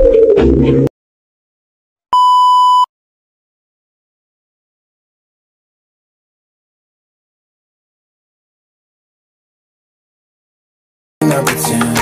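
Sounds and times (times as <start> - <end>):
test-tone beep: 2.2 - 2.9.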